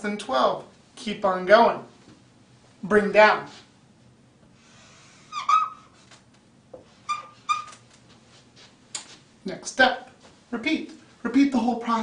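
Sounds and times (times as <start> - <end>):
marker squeaks: 5.2 - 6.1, 7.0 - 7.8.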